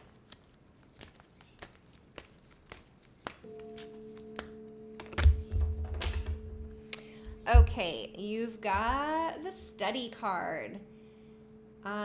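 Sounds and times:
cards being shuffled: 0.0 - 6.4
soft background music chord: 3.4 - 12.0.

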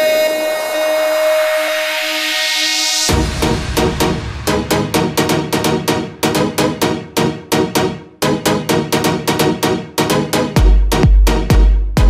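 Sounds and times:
rising noise sweep: 0.6 - 6.7.

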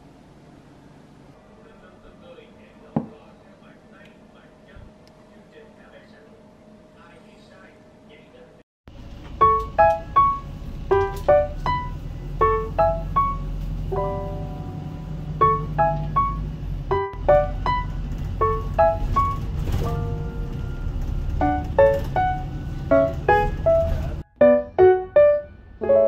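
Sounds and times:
bus engine and road rumble: 8.9 - 24.3
piano melody: 8.9 - 26.0.

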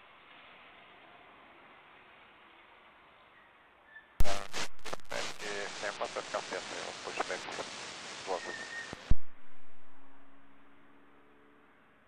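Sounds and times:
radio speech: 4.2 - 9.1
radio transmission hiss: 4.2 - 10.7
faint hum: 4.2 - 12.0.

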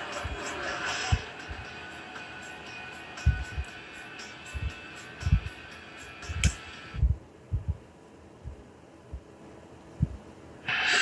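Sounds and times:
sharp click: 6.3 - 6.6
low dull thumps on microphone: 7.0 - 7.8, 10.0 - 10.2.

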